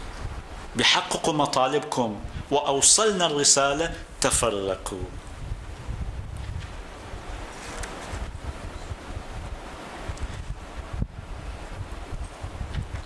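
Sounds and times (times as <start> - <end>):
steady rushing noise: 0.0 - 13.0.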